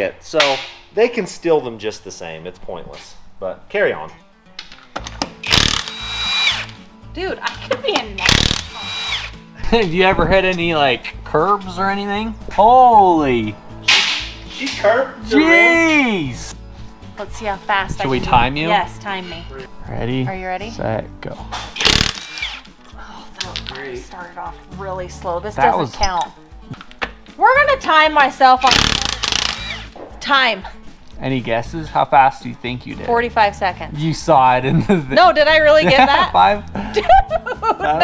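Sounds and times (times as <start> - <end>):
background music: 0.0 - 38.0
impact wrench hammering: 8.0 - 9.2, 21.8 - 22.7, 28.6 - 30.0
metallic clink with ringing: 22.6 - 24.0.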